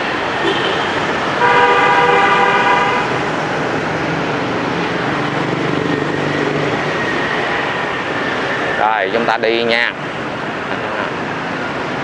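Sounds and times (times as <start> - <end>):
busy street traffic: 0.0 - 12.0
motorbikes passing: 0.0 - 12.0
vehicle horn: 0.4 - 3.3.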